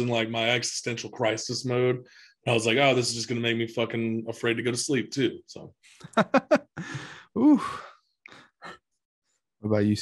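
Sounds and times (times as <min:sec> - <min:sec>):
man sighing: 0:06.0 - 0:08.4.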